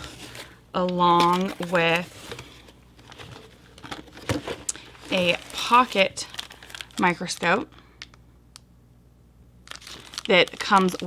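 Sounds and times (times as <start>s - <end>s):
low room hum: 0.0s - 11.0s
plastic crinkle: 1.2s - 8.2s, 9.6s - 11.0s.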